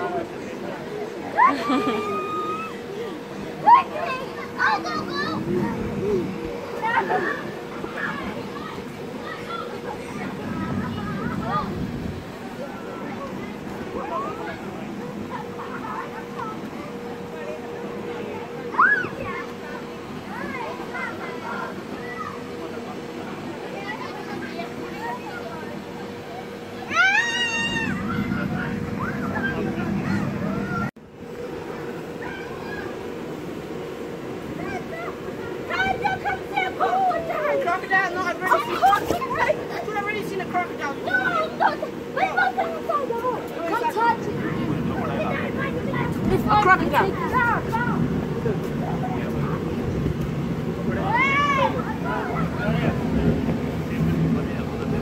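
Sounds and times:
high cry: 0:26.9 - 0:28.0
steady low drone: 0:44.0 - 0:55.0.

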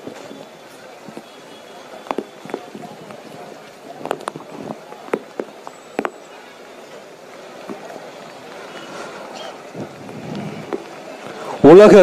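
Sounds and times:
sound system background noise: 0:00.0 - 0:12.0.

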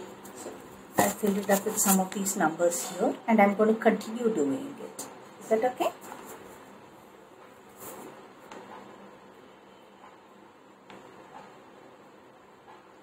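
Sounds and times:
paper notebook rustling: 0:01.0 - 0:02.3.

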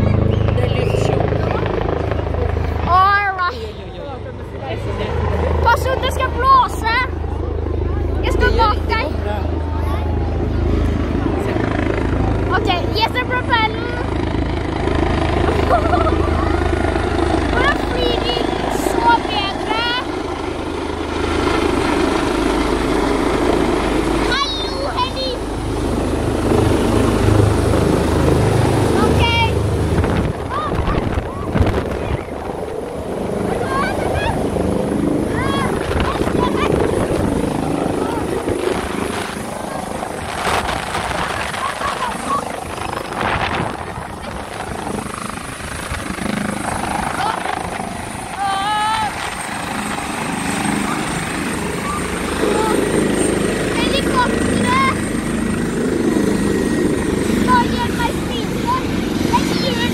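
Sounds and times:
helicopter rotor beat: 0:00.0 - 0:59.9
high turbine whine: 0:00.0 - 0:59.9.

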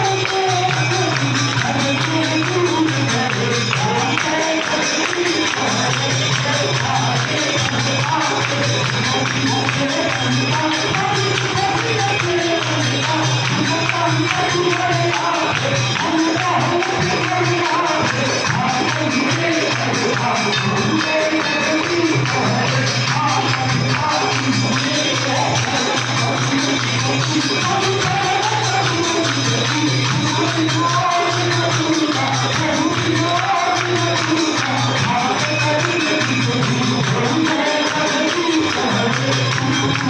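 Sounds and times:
jingling hand percussion: 0:00.0 - 0:40.0
person singing devotional song: 0:00.0 - 0:40.0.

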